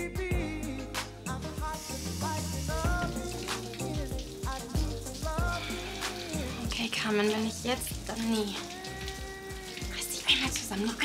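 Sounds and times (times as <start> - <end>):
background music with a beat: 0.0 - 6.8, 8.0 - 9.9
shower water running: 0.5 - 11.0.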